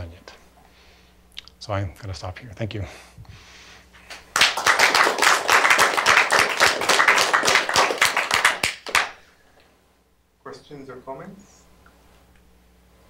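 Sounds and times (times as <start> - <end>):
audience clapping: 4.1 - 9.2.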